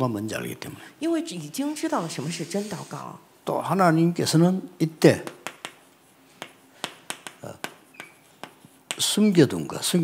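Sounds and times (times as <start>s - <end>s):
chalk tapping on chalkboard: 5.2s - 9.7s.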